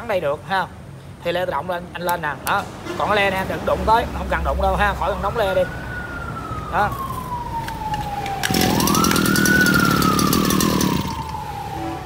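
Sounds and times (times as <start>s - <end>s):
siren wailing: 5.1s - 12.0s.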